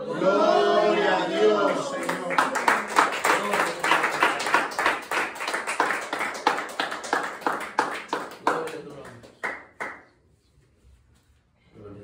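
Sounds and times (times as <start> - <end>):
hand clapping: 2.0 - 10.1.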